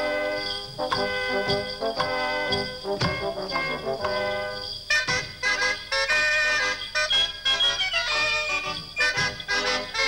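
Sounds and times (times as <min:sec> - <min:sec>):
folk band of reeds and brass: 0:00.0 - 0:10.0.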